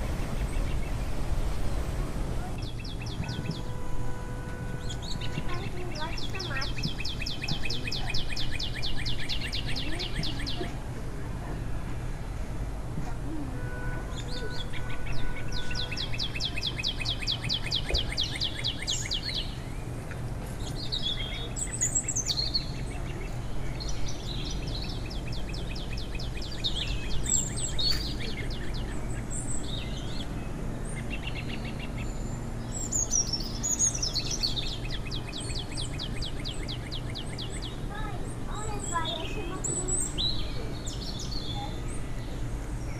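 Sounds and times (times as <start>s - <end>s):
songbirds trilling and chirping: 0.0s - 42.9s.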